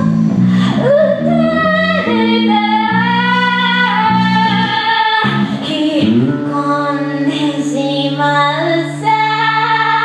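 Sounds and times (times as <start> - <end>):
electric bass: 0.0 - 10.0.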